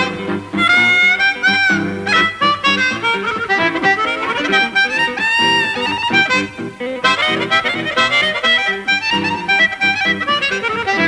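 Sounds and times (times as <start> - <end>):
guitar accompaniment: 0.0 - 11.0
harmonica bent notes: 0.0 - 11.0.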